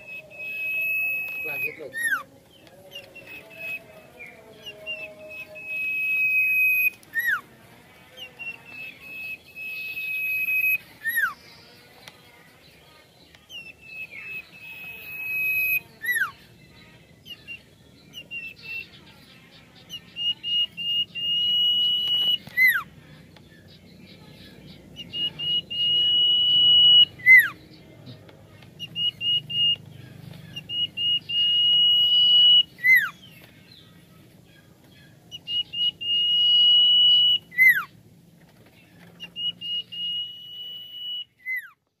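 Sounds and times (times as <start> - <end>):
bird singing whistled phrase: 0.0 - 2.3, 2.9 - 7.4, 8.2 - 11.4, 13.5 - 16.4, 17.2 - 19.0, 19.9 - 22.9, 25.0 - 27.6, 28.8 - 29.8, 30.5 - 33.4, 35.3 - 37.9, 39.2 - 41.8.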